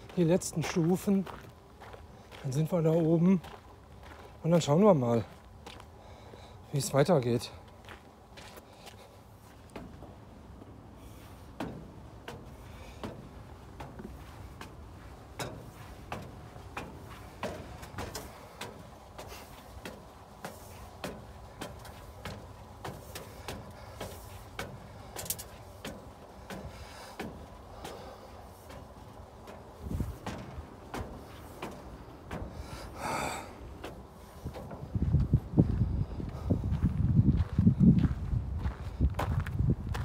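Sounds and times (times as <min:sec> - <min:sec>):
footsteps on metal stairs: 0:00.0 - 0:40.0.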